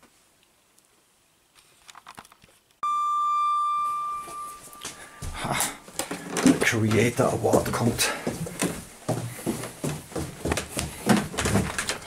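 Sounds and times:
doorbell high-pitched tone: 2.8 - 5.2.

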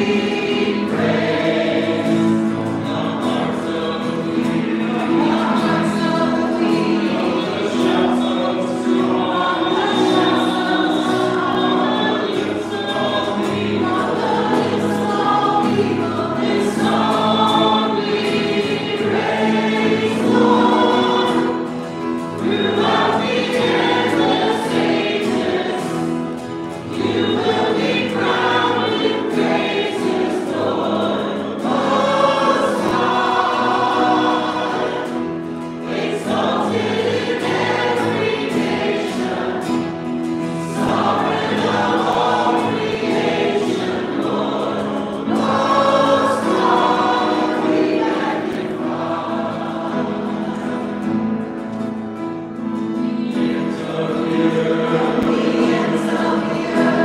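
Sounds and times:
acoustic guitar: 0.0 - 57.0
group singing a worship song: 0.0 - 57.0.

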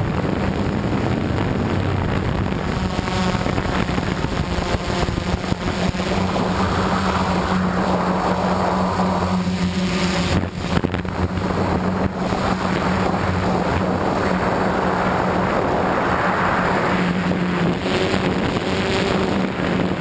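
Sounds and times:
drone motors droning hum: 0.0 - 20.0
wind buffeting microphone: 0.0 - 20.0.

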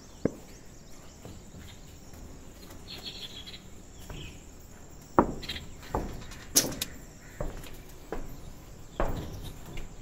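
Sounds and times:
high chirping: 0.0 - 9.9
faint outdoor background: 0.0 - 10.0
sharp knocks: 5.1 - 10.0.

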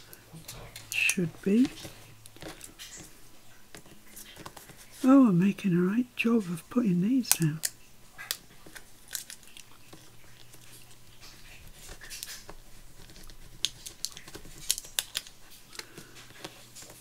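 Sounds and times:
paper pieces clicking and rustling: 7.2 - 17.0.

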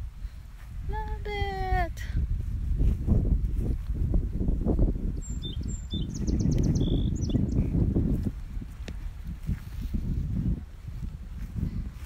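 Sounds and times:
wind buffeting microphone: 0.0 - 12.0
songbird chirping: 5.1 - 7.8.

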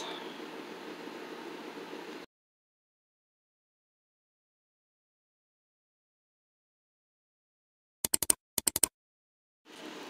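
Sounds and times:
faint steady hum: 0.0 - 2.3
sharp clicks: 8.0 - 8.9.

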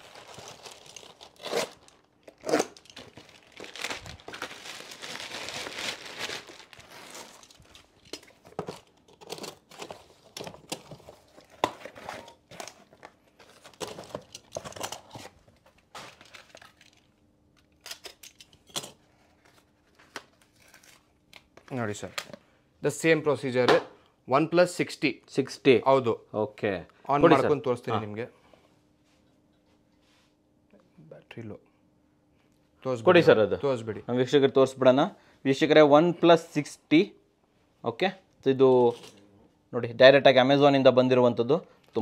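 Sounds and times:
plastic bag tearing and crinkling: 0.0 - 8.0.

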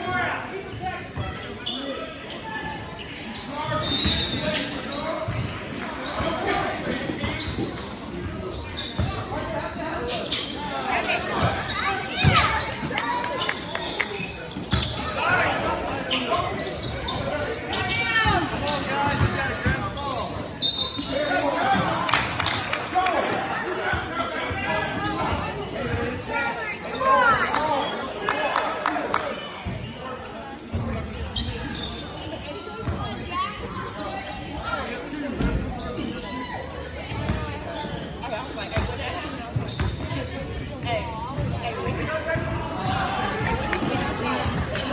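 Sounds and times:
voices in echoing hall: 0.0 - 44.9.

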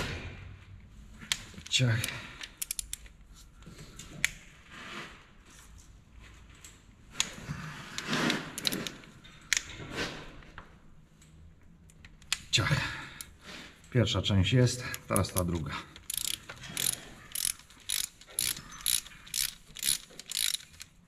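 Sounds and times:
wrench clicking and knocking: 1.3 - 3.1, 15.0 - 21.0.

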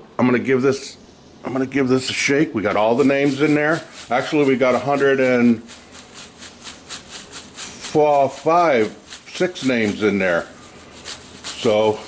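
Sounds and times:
paper slips rustling in a hat: 3.1 - 12.0.

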